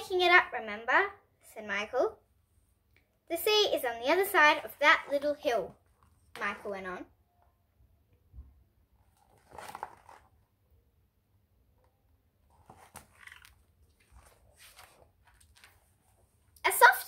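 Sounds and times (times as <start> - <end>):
paper rustling: 9.0 - 10.4, 12.5 - 16.4
book page turning: 9.0 - 10.5, 12.4 - 16.4.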